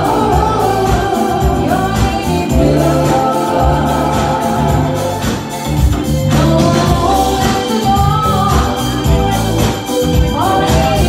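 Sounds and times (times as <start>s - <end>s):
bass line: 0.0s - 11.0s
person singing: 0.0s - 11.0s
reggae band over loudspeakers: 0.0s - 11.0s
steady drum beat: 0.0s - 11.0s.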